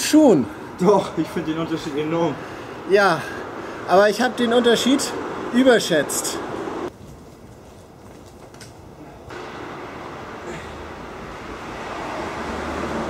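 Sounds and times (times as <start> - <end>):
urban background noise: 0.0 - 13.0.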